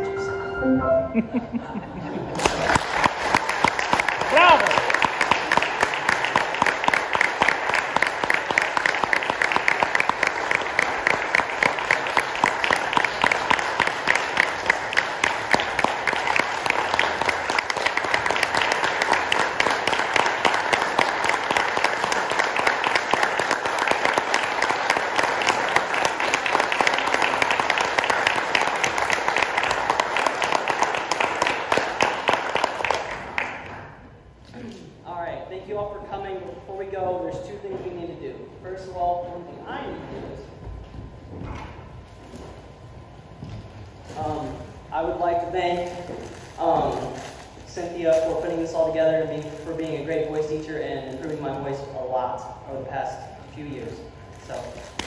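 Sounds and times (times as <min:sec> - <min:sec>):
audience applauding: 0:02.2 - 0:34.1.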